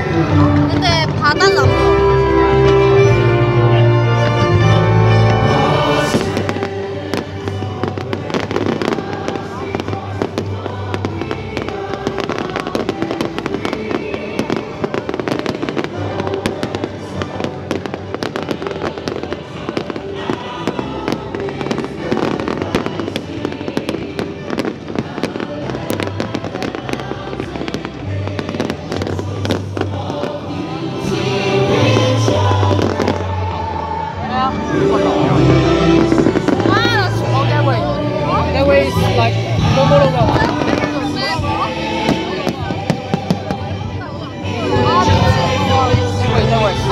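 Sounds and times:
music over loudspeakers: 0.0 - 46.9
fireworks bursting and crackling: 5.2 - 46.9.

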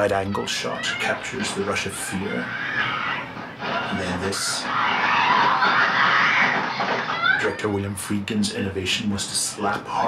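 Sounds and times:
bed rattling violently: 0.8 - 7.7.

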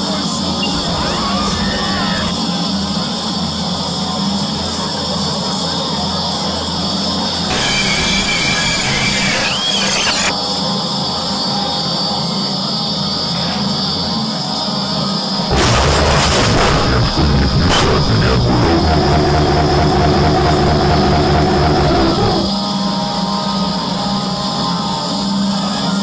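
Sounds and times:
short gliding squeals: 7.5 - 10.3
overlapping soundtracks with music: 15.5 - 22.5.

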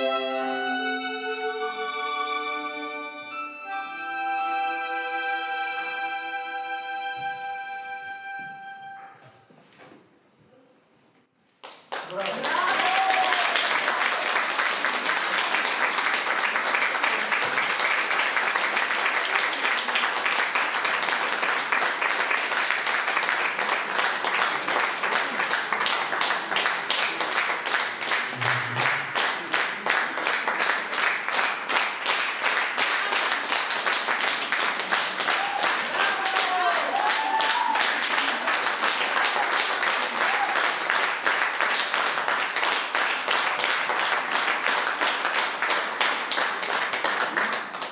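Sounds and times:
audience applauding: 11.6 - 47.9.

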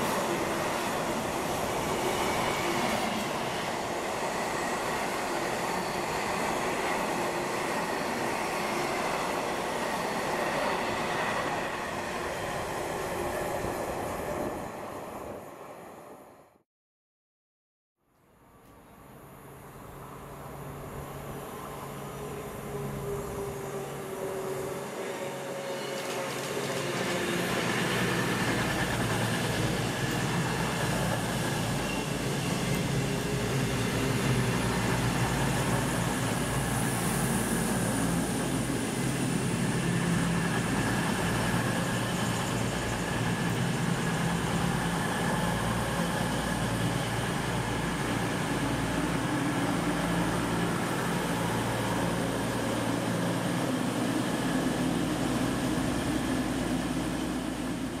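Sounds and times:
diesel trains arriving: 0.0 - 16.5, 18.6 - 58.0.

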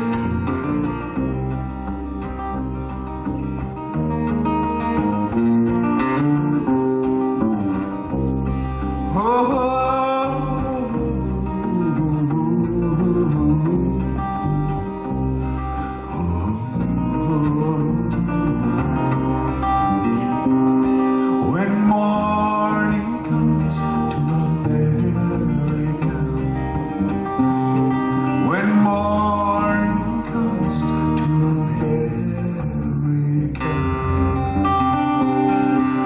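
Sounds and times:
acoustic guitar chords: 0.0 - 36.0
guitar slides: 0.0 - 36.0
person singing: 8.9 - 14.4, 15.9 - 19.4, 21.1 - 36.0.

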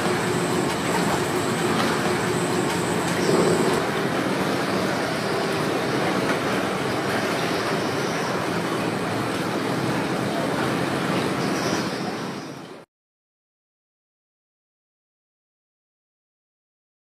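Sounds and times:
thin high whine: 0.0 - 3.8
conveyor machinery running: 0.0 - 12.8.

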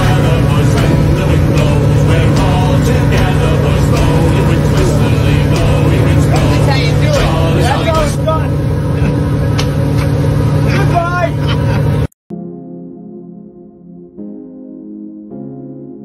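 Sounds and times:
voices: 0.0 - 9.8, 10.6 - 11.9
boat engine droning: 0.0 - 12.2.

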